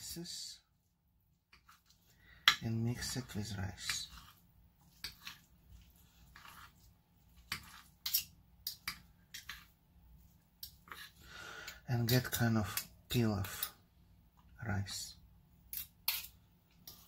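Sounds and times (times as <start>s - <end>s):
knife and fork scraping a plate: 1.5s - 9.8s, 10.6s - 11.2s, 15.7s - 17.0s.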